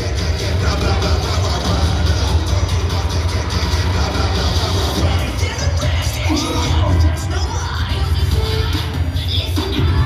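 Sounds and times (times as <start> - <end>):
cheerleading music with heavy bass: 0.0 - 10.0.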